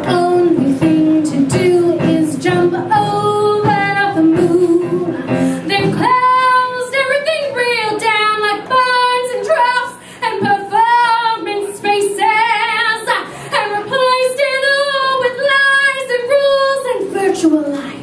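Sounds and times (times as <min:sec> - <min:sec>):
woman singing into a microphone: 0:00.0 - 0:18.0.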